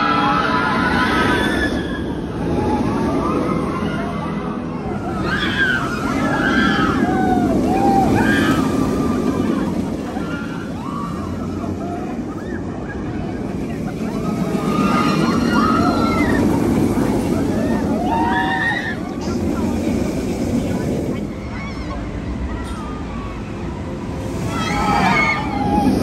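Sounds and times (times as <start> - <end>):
roller coaster rumbling on track: 0.0 - 26.0
riders screaming: 5.1 - 11.4, 14.4 - 16.9, 24.4 - 26.0.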